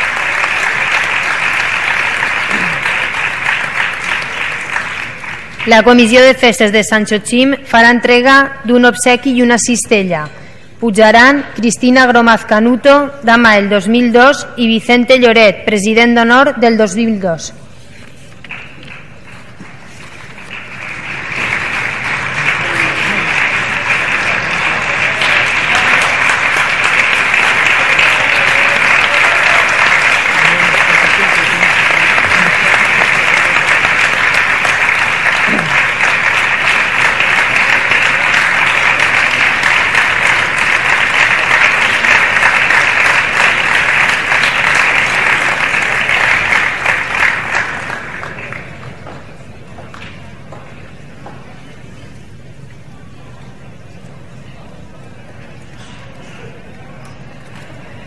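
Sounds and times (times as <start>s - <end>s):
audience applauding: 0.0s - 5.7s, 18.4s - 49.1s.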